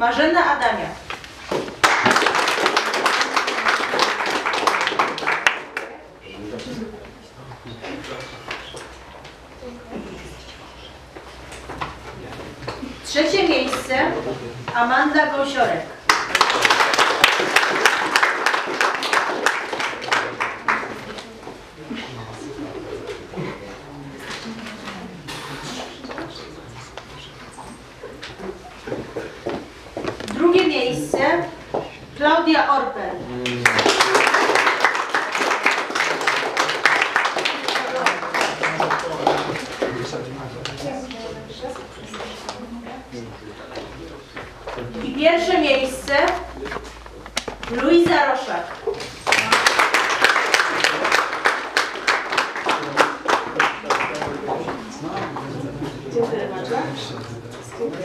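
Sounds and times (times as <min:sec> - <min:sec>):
audience applause: 0:01.8 - 0:06.0, 0:16.1 - 0:21.1, 0:33.4 - 0:40.2, 0:49.2 - 0:54.7
murmured talk: 0:05.2 - 0:11.1, 0:20.0 - 0:29.6, 0:37.4 - 0:47.2, 0:52.4 - 0:58.0.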